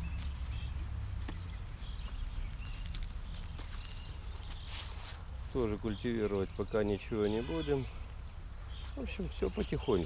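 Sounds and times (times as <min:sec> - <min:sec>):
footsteps on soft soil: 0:00.0 - 0:10.0.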